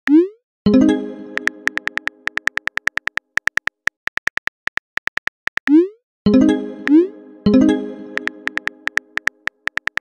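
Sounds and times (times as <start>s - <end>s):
phone keyboard typing clicks: 1.4s - 5.8s, 8.2s - 10.0s.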